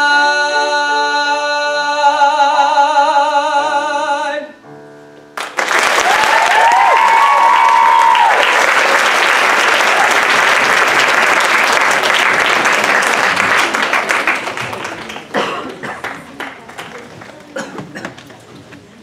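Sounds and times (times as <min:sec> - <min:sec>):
audience applause: 0:05.4 - 0:17.8
cheering calls: 0:05.9 - 0:11.7.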